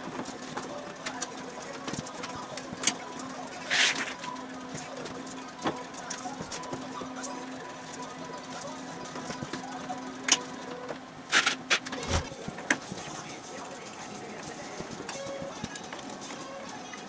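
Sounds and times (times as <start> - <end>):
steady hum: 10.0 - 12.6.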